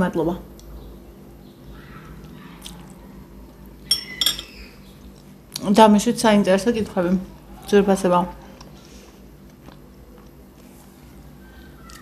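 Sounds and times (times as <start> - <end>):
person chewing: 2.2 - 3.0, 8.5 - 11.0, 11.6 - 12.0
fork clinking on a plate: 3.9 - 4.5.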